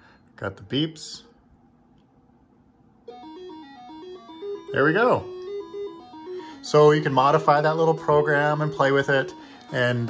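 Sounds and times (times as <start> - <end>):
chiptune music: 3.1 - 10.0.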